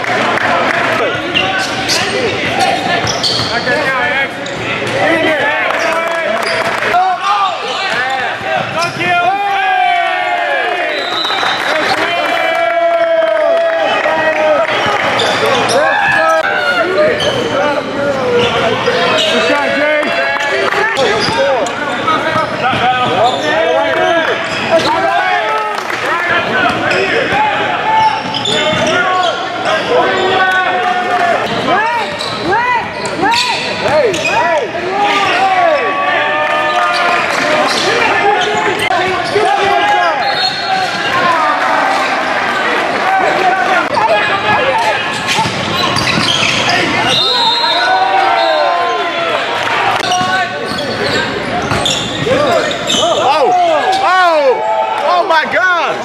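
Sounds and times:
players calling out: 0.0s - 56.0s
sneakers squeaking: 1.1s - 6.9s, 7.5s - 9.4s, 14.9s - 19.8s, 20.4s - 25.1s, 26.5s - 35.9s, 36.6s - 41.3s, 43.2s - 54.1s
basketball bouncing on court: 45.3s - 46.7s, 51.0s - 52.4s.

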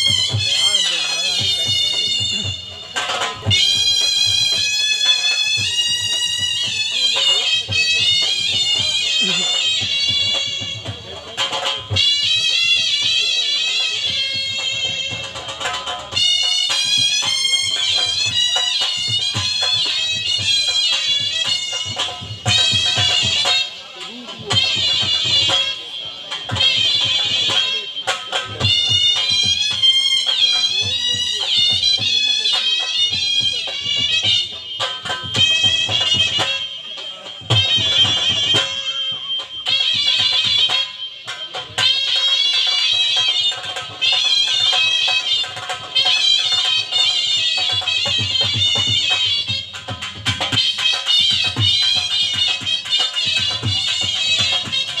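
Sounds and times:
dhol drum beats: 0.0s - 55.0s
shehnai reed melody: 0.0s - 55.0s.

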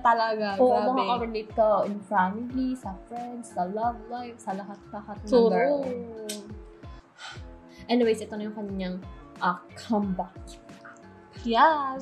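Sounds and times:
soft background music: 0.0s - 12.0s
woman's wordless vocal: 0.6s - 1.3s, 5.3s - 6.6s.

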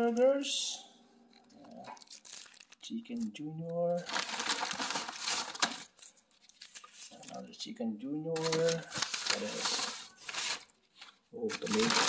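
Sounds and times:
paper bag rustling: 1.3s - 2.9s, 4.0s - 7.5s, 8.4s - 12.0s.

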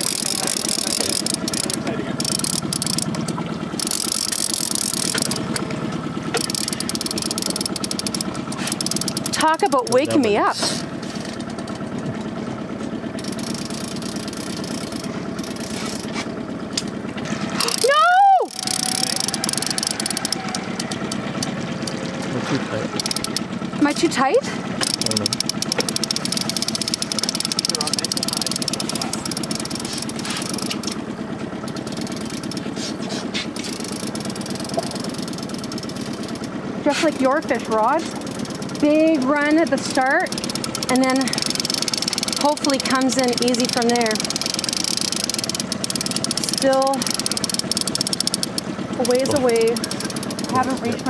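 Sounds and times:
boat outboard motors idling: 0.0s - 51.0s.

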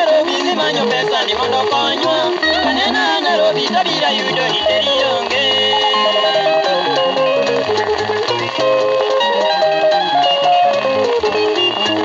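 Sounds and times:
electric guitar band music on vinyl: 0.0s - 12.0s.

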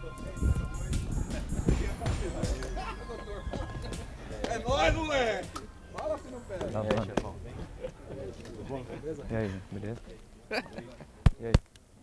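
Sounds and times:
men talking in low conversation: 0.0s - 11.6s.

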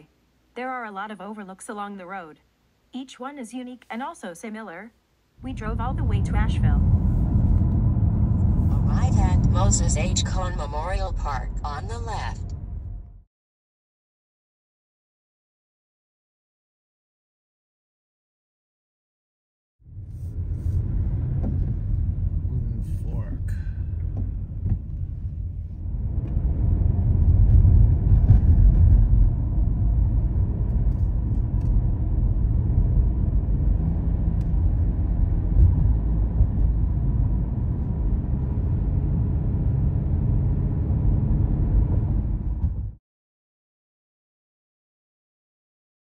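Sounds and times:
car road and engine rumble: 5.4s - 13.2s, 19.9s - 43.0s.

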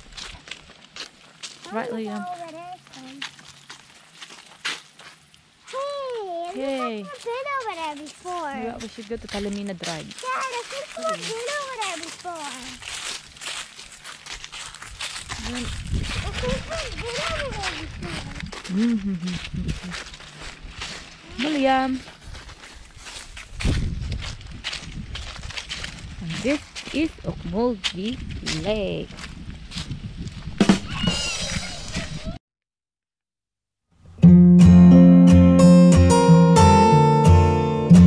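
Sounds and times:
footsteps crunching on dry leaves: 0.0s - 31.6s
outdoor ambience: 0.0s - 32.4s.

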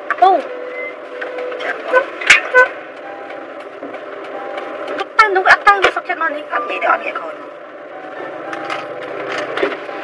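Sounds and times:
woman talking: 5.0s - 7.5s.

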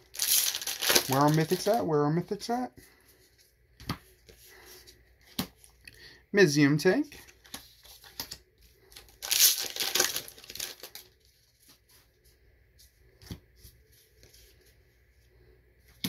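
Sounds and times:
foil wrapper tearing and crinkling: 0.0s - 1.8s, 9.0s - 11.2s.

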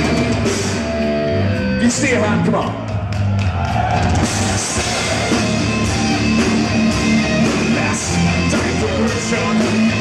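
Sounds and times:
bass guitar: 0.0s - 10.0s
distorted guitars: 0.0s - 10.0s
drum kit with crashing cymbals: 4.1s - 10.0s.

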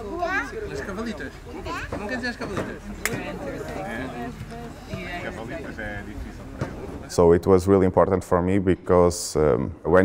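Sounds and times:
child's high-pitched voice: 0.0s - 0.6s.

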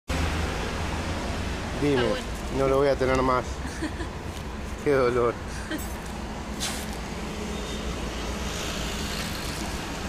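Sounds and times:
street traffic rumble: 0.1s - 10.0s
brief hiss: 6.6s - 7.0s.

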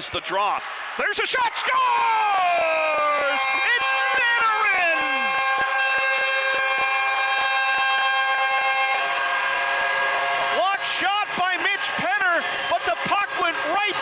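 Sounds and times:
air horn blast: 2.3s - 14.0s.

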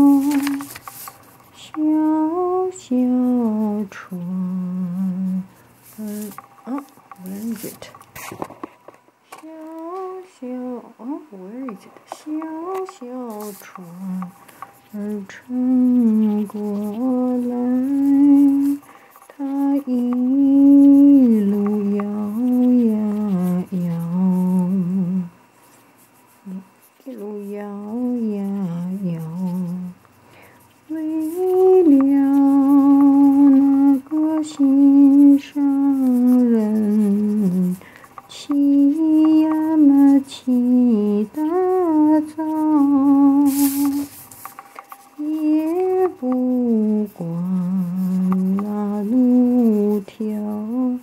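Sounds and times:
woman humming: 0.0s - 0.7s, 1.6s - 7.9s, 9.4s - 25.4s, 26.4s - 30.0s, 30.9s - 44.1s, 45.2s - 51.0s.

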